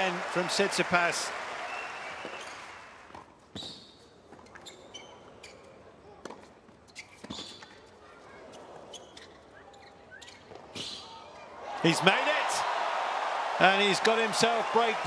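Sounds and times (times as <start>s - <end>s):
shoes squeaking on court: 2.2s - 2.7s, 3.5s - 11.2s.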